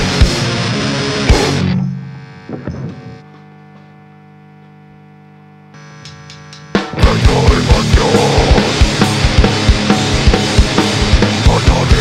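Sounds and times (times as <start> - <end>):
amplifier mains hum: 0.0 - 10.7.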